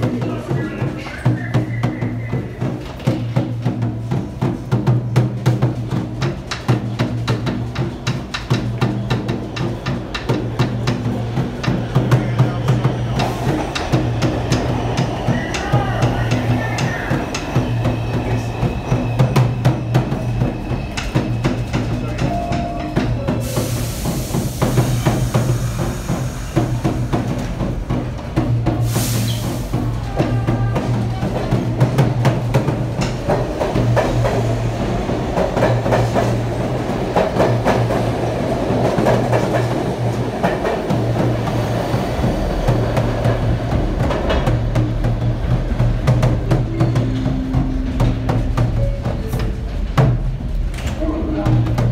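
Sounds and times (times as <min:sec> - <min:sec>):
subway train rumble: 0:00.0 - 0:51.9.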